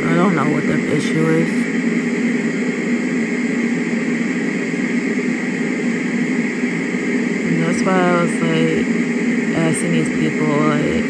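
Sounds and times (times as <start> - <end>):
white noise machine hissing: 0.0 - 11.0.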